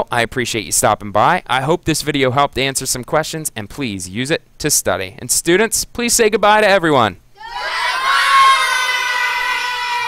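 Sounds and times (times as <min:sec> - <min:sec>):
children calling out in chorus: 0:07.4 - 0:10.0.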